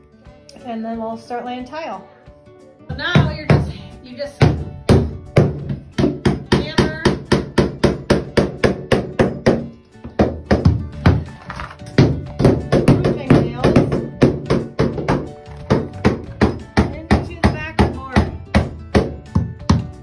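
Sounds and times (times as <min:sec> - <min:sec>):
hammer driving nails: 0:04.9 - 0:18.0.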